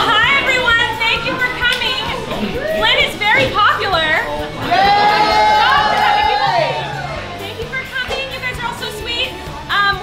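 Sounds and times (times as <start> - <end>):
children's voices: 0.0 - 3.6
people chattering: 0.0 - 9.2.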